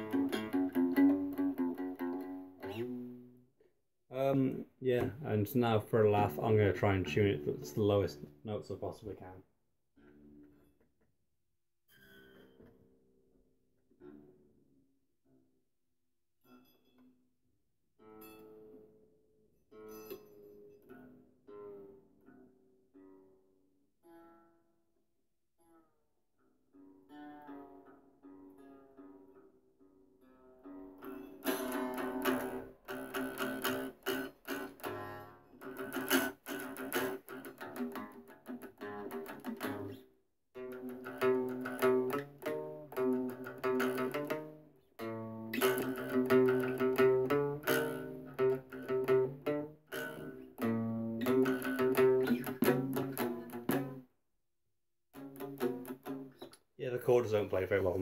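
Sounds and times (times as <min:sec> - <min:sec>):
plucked string instrument: 0:00.0 - 0:03.4, 0:04.1 - 0:09.4, 0:10.0 - 0:10.9, 0:11.9 - 0:15.5, 0:18.0 - 0:24.8, 0:25.6 - 0:54.1, 0:55.1 - 0:58.0.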